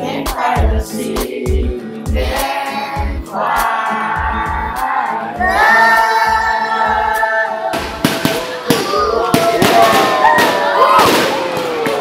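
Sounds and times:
group singing with music track: 0:00.0 - 0:09.0
fireworks cracking and popping: 0:07.7 - 0:12.0.

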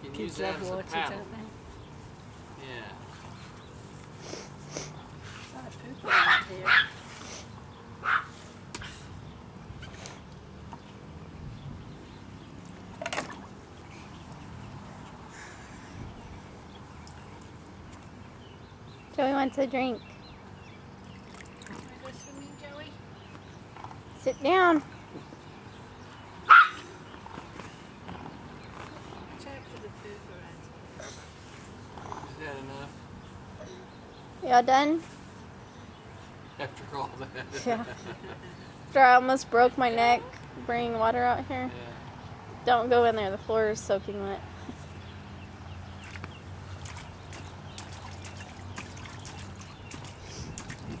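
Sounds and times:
small dog barking: 0:06.1 - 0:07.0, 0:08.0 - 0:08.3, 0:26.5 - 0:26.8
water splashing and dripping: 0:21.0 - 0:22.1, 0:46.0 - 0:51.0.

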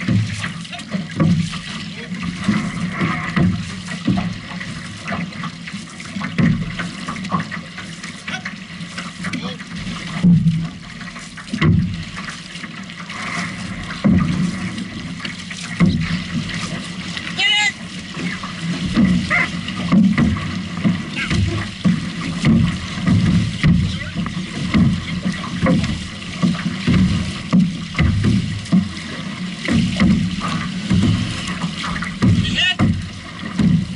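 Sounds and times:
paddles pulling through water: 0:00.0 - 0:33.9
water splashing along canoe hull: 0:00.0 - 0:33.9.

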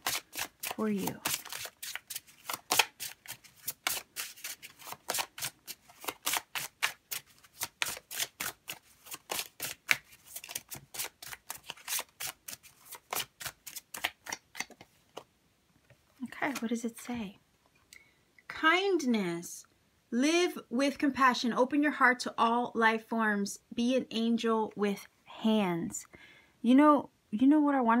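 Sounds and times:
cards shuffled slapping: 0:00.0 - 0:15.3, 0:16.4 - 0:16.8.

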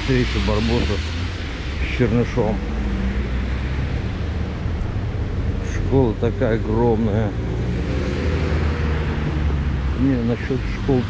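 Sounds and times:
tyre hiss on wet road: 0:00.0 - 0:03.7
low engine hum: 0:00.0 - 0:11.0.

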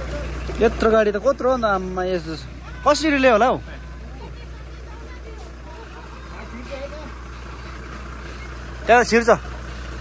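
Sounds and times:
diesel truck engine low revs: 0:00.0 - 0:10.0.

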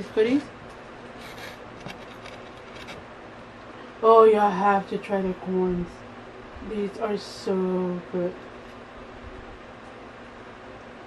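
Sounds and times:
rustles and clicks of handling food: 0:00.6 - 0:03.7
low background hiss: 0:03.3 - 0:09.8.

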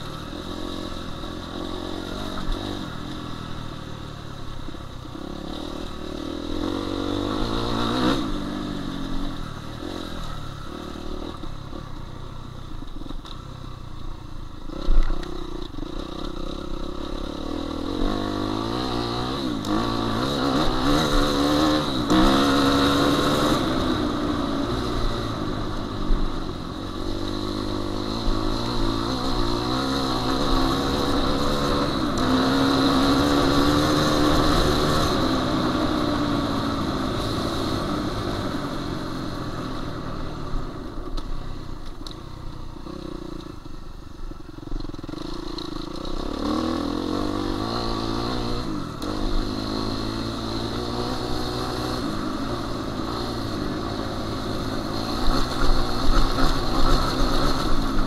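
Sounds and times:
motocross bike engine revving: 0:05.1 - 0:11.8, 0:14.7 - 0:39.8, 0:44.8 - 0:58.0.

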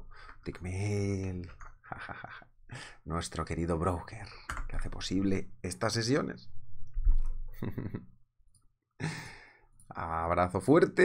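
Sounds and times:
man laughing: 0:01.8 - 0:02.4, 0:07.6 - 0:08.1.

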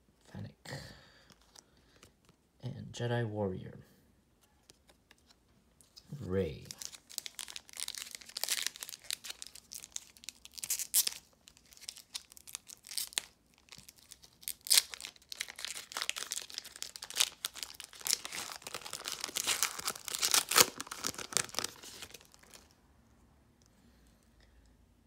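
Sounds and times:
foil wrapper crinkling and tearing: 0:06.5 - 0:22.7.

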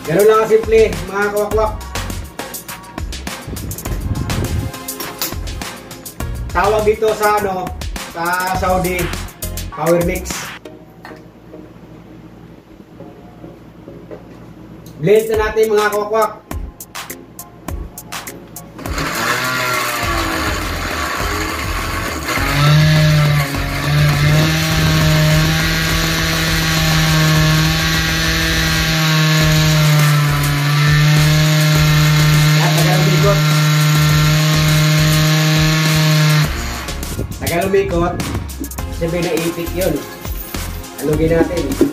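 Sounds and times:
blender running: 0:18.8 - 0:37.2.

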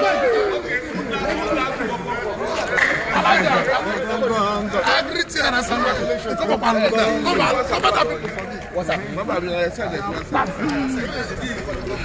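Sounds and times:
men talking and calling out: 0:00.0 - 0:12.0.

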